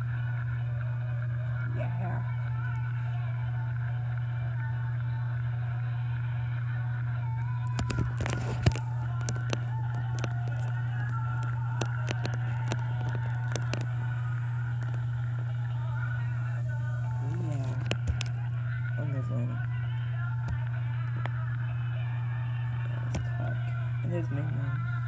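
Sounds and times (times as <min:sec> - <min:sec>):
steady low hum: 0:00.0 - 0:25.0
stage show voices and music: 0:01.1 - 0:25.0.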